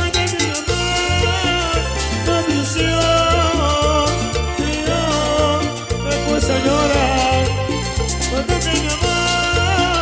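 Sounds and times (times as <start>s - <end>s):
latin dance band music: 0.0s - 10.0s
sung melody: 0.0s - 10.0s.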